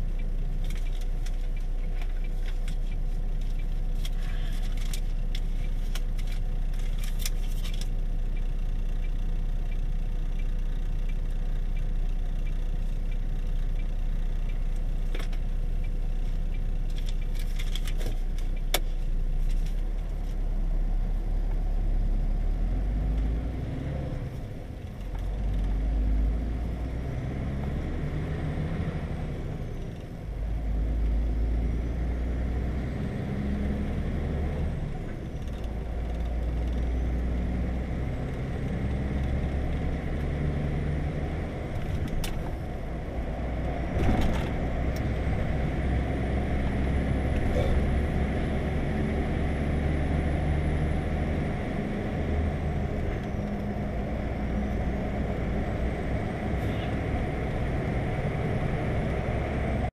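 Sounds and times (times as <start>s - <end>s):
truck engine and road noise: 0.0s - 59.9s.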